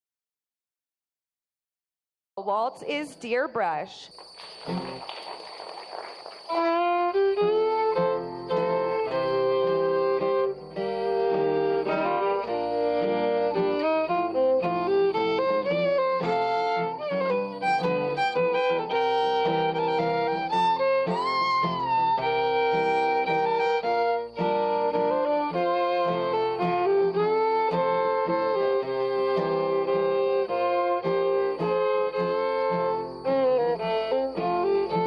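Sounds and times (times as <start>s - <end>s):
acoustic guitars strumming: 4.4s - 35.0s
fiddle playing waltz melody: 6.5s - 35.0s.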